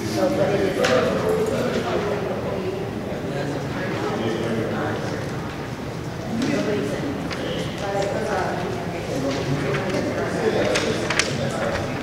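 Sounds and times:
people talking in a large hall: 0:00.0 - 0:12.0.

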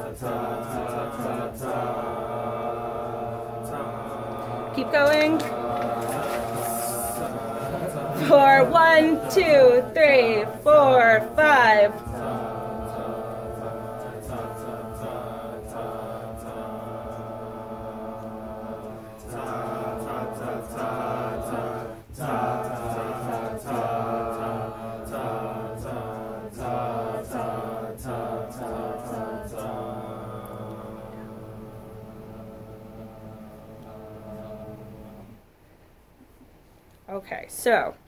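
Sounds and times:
students singing in parts: 0:00.0 - 0:35.5
a cappella group holding chord: 0:00.0 - 0:35.8.

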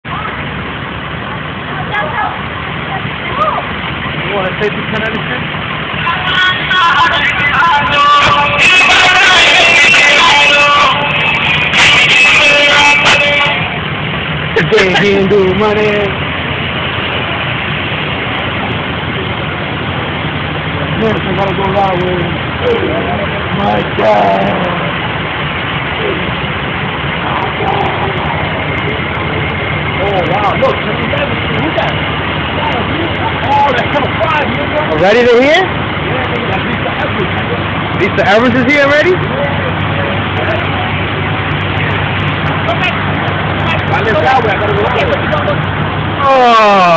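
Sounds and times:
indistinct voices: 0:00.0 - 0:46.9
street noise: 0:00.0 - 0:46.9
vehicle engines running: 0:00.0 - 0:46.9.

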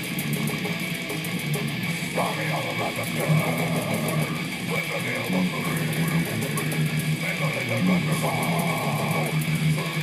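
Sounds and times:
distorted electric guitar riff: 0:00.0 - 0:10.0.

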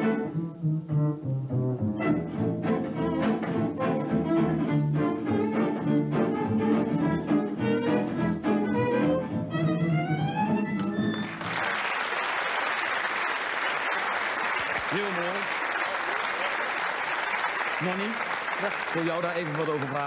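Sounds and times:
gypsy jazz violin with bass and guitar: 0:00.0 - 0:11.6
audience applauding: 0:10.8 - 0:20.0.

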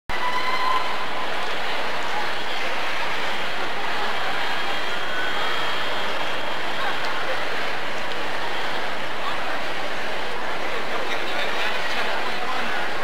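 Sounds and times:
murmur of large indoor crowd: 0:00.1 - 0:13.0.

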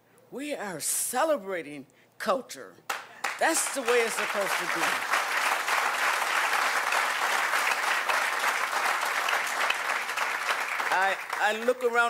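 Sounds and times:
audience applauding: 0:02.9 - 0:12.0.

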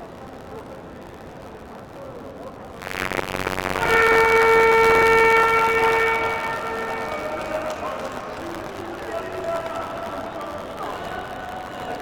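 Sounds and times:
noisy background: 0:00.0 - 0:12.0
horn long steady note: 0:02.8 - 0:12.0.

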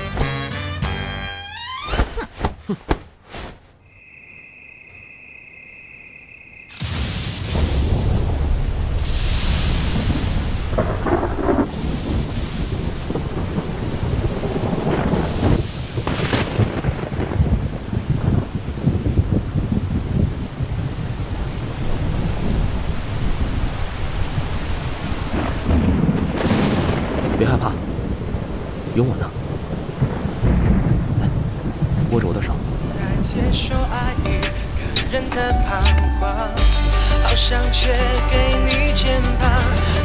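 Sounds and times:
steady rain: 0:06.7 - 0:35.3
sharp thunderclaps: 0:06.8 - 0:33.4
low rolling thunder: 0:06.8 - 0:34.3.

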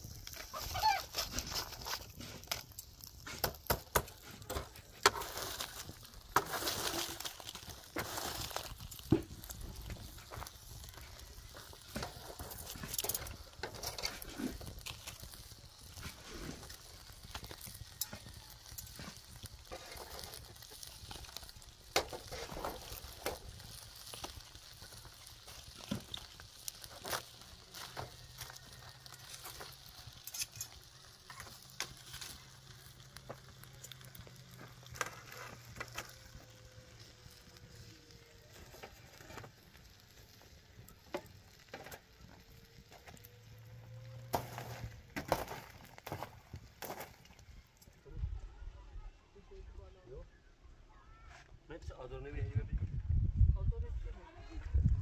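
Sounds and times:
metal tongs scraping charcoal: 0:00.0 - 0:43.3
charcoal crackling: 0:00.0 - 0:48.2.

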